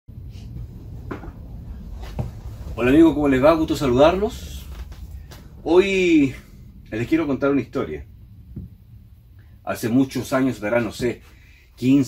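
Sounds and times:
low room hum: 0:00.1 - 0:12.0.

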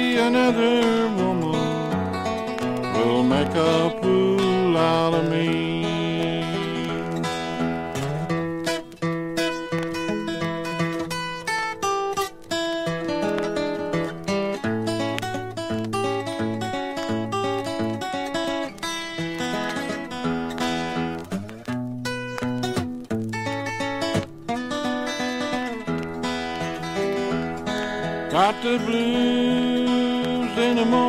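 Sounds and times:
acoustic guitar picking lead: 0:00.0 - 0:31.0
held guitar chords: 0:00.0 - 0:31.0.

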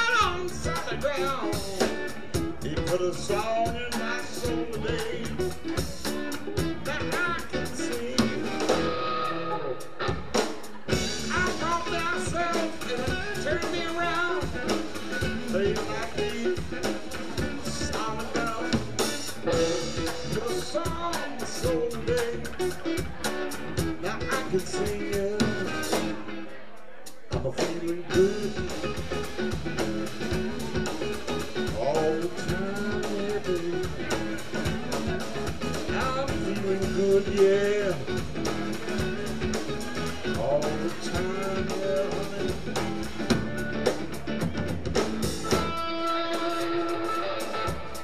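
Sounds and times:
man singing: 0:00.0 - 0:09.2, 0:10.9 - 0:43.8
blues-rock band playing: 0:00.0 - 0:48.0.

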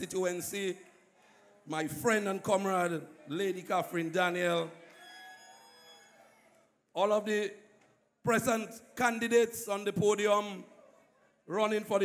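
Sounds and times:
man speaking amplified: 0:00.0 - 0:00.9, 0:01.6 - 0:04.8, 0:07.0 - 0:10.8, 0:11.5 - 0:12.0.

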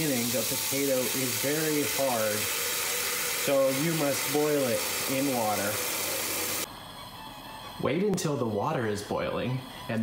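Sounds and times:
tap water running into metal pot: 0:00.0 - 0:06.7.

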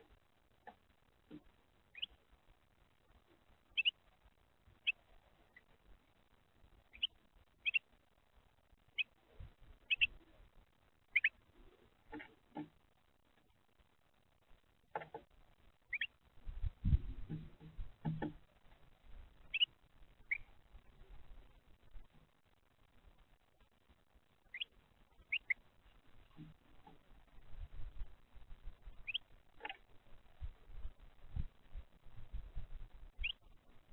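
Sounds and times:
bird chipping: 0:01.9 - 0:02.2, 0:03.7 - 0:04.1, 0:04.8 - 0:05.7, 0:06.8 - 0:07.9, 0:08.9 - 0:09.2, 0:09.8 - 0:10.4, 0:11.0 - 0:11.4, 0:15.9 - 0:16.2, 0:19.4 - 0:20.6, 0:24.5 - 0:25.6, 0:28.9 - 0:29.8, 0:33.1 - 0:33.5.

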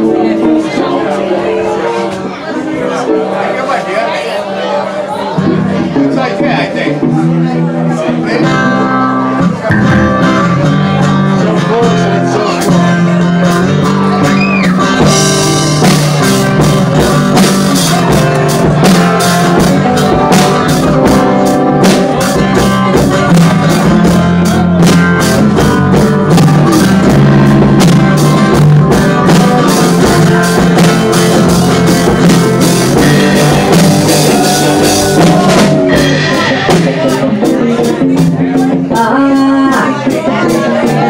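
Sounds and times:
live rock band playing: 0:00.0 - 0:41.0.

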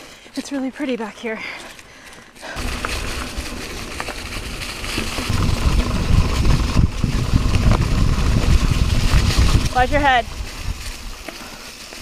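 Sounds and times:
bike tyres on dirt trail: 0:00.0 - 0:12.0
low rumble: 0:02.6 - 0:11.3.

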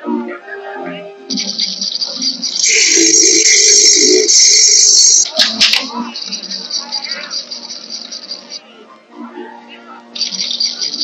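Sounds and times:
high-pitched continuous ringing: 0:01.3 - 0:08.6, 0:10.2 - 0:11.0.

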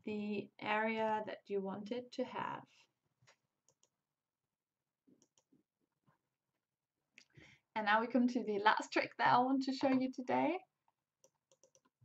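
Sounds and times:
computer mouse clicks: 0:03.3 - 0:04.0, 0:05.2 - 0:05.5, 0:11.2 - 0:12.0.

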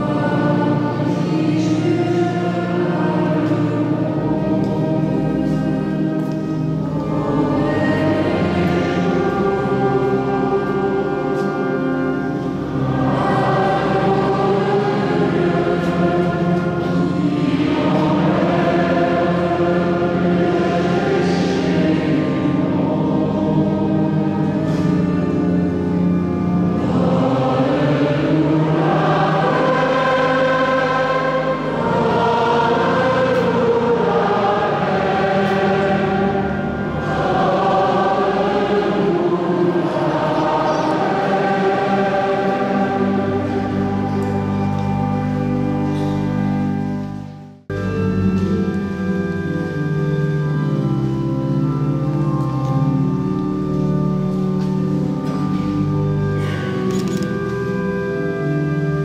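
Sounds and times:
choir singing sacred music: 0:00.0 - 0:59.0.

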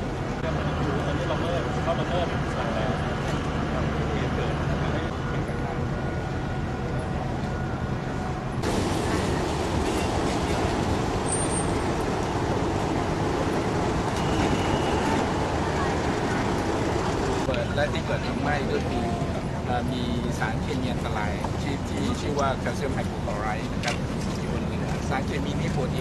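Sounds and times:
outdoor background rumble and hiss: 0:00.0 - 0:26.0.

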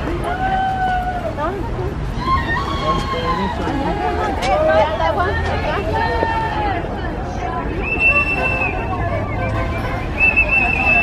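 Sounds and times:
babble of people talking: 0:00.0 - 0:11.0.

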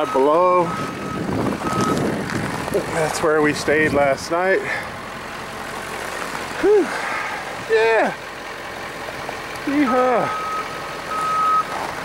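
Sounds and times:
vehicle running: 0:00.0 - 0:12.0
high electronic beep: 0:09.9 - 0:11.7.

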